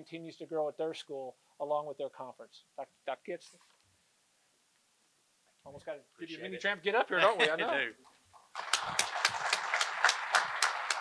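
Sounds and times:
people clapping: 8.4s - 11.0s.

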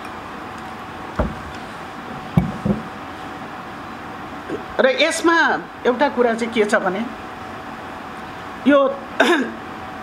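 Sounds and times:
woman clearing her throat: 9.2s - 9.6s.

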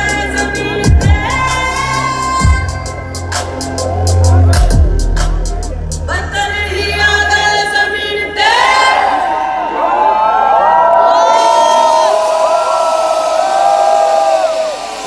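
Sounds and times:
music with bass: 0.0s - 8.4s
crowd cheering and screaming: 0.8s - 6.0s, 8.3s - 15.0s.

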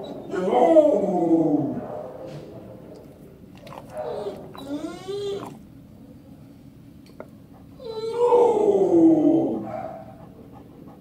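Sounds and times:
dog whining: 3.5s - 5.7s, 7.6s - 10.2s.

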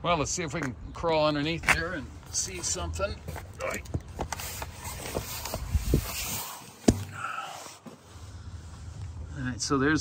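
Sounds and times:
cardboard scraping on pavement: 1.6s - 7.1s.

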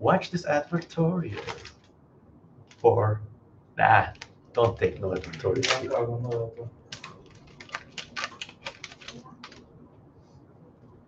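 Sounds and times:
plastic packet crinkling: 1.3s - 1.9s, 4.1s - 6.0s, 6.9s - 9.6s.

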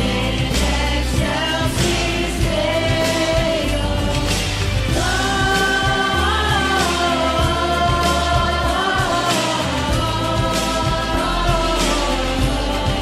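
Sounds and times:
band playing worship music: 0.0s - 13.0s
choir singing held notes: 0.0s - 13.0s.

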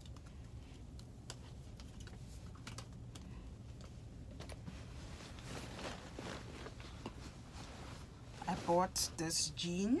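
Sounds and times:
fabric rustling: 4.6s - 10.0s.

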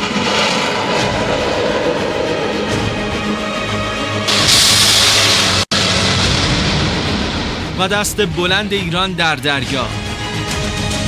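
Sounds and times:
rocket motor roaring: 0.0s - 7.8s
dramatic background music: 0.0s - 11.0s.

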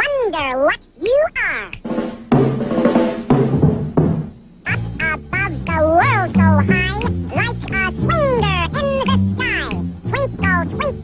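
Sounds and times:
drum kit strikes: 1.8s - 5.7s.

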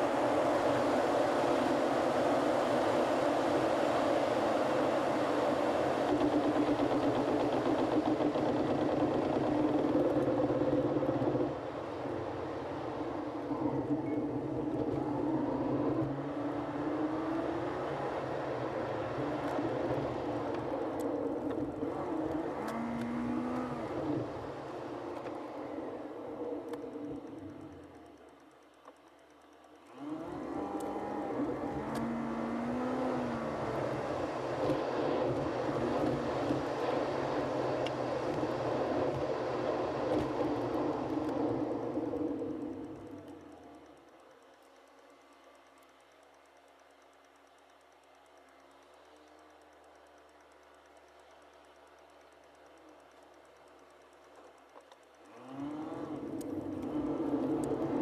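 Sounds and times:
in-cabin road and engine noise: 0.0s - 58.0s.

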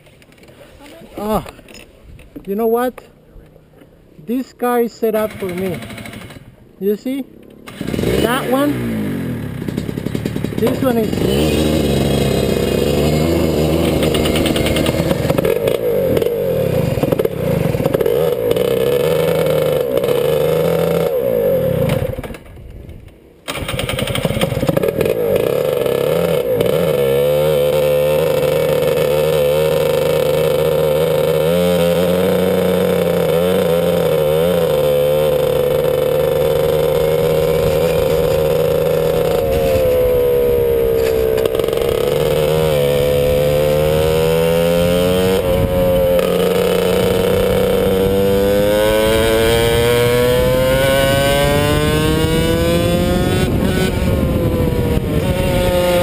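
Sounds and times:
kart engine revving: 5.1s - 6.6s, 7.6s - 22.6s, 23.4s - 56.0s.

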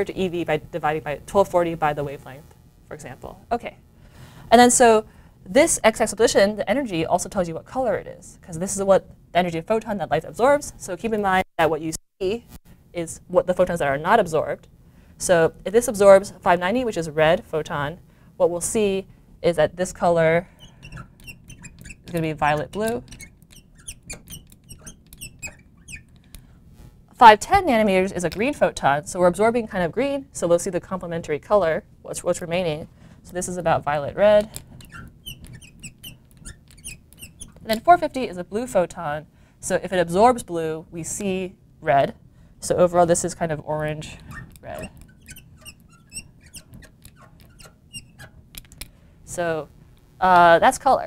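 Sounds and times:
marker squeaking on glass: 19.8s - 26.9s, 33.5s - 38.2s, 44.0s - 48.8s.

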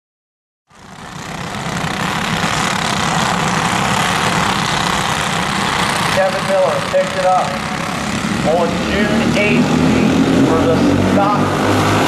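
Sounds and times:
racing kart engines running: 0.7s - 12.0s.

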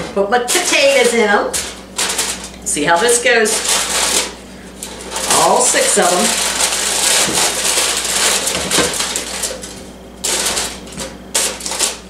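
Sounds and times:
aluminium foil crinkling: 0.3s - 12.0s.

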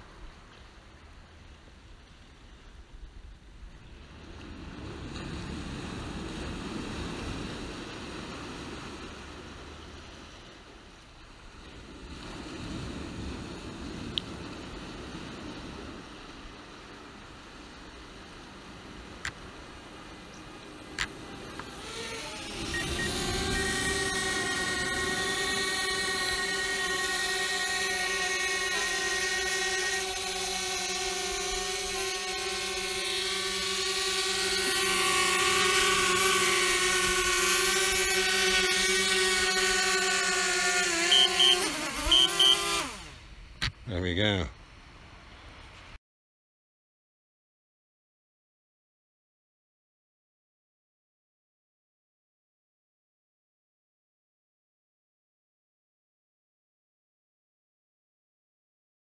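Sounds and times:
drone propellers humming: 17.3s - 43.8s
motors winding down: 20.0s - 43.2s
short beeps: 22.7s - 23.7s, 41.1s - 42.6s.

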